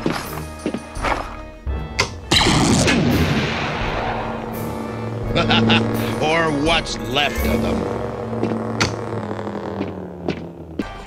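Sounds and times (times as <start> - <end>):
background music: 0.0 - 11.0
cartoon explosion rumble: 2.3 - 7.3.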